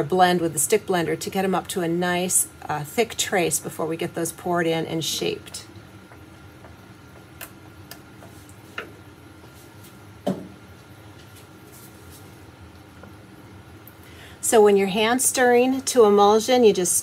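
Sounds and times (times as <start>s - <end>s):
steady low hum: 0.0s - 17.0s
knock: 10.2s - 10.5s.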